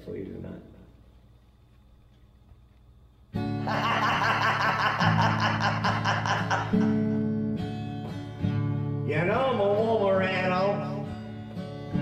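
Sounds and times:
acoustic guitar strumming chords: 3.3 - 12.0.

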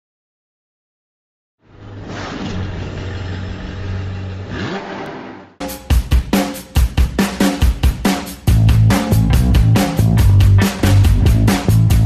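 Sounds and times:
engine revving: 1.7 - 5.6
drum-led music: 5.6 - 12.0.

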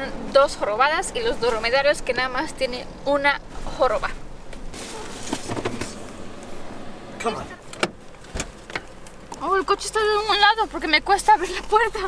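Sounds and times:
rushing noise in car cabin: 4.7 - 8.9.

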